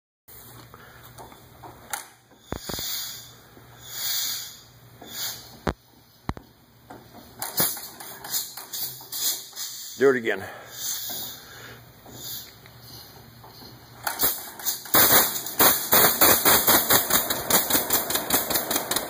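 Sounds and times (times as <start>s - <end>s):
engine hissing: 2.3s - 6.2s, 7.0s - 19.0s
tractor engine popping: 13.4s - 19.0s.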